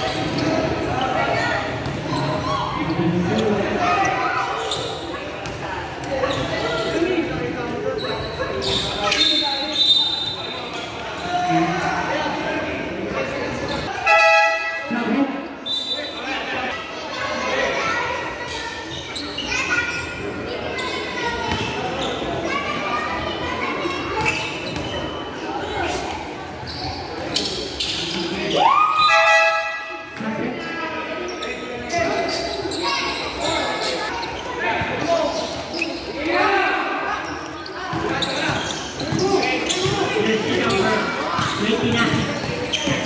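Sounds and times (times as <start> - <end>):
voices echoing in hall: 0.0 - 43.0.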